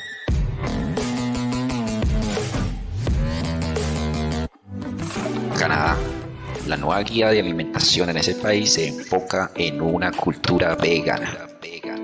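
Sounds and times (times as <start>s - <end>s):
background music with held chords: 0.1s - 12.0s.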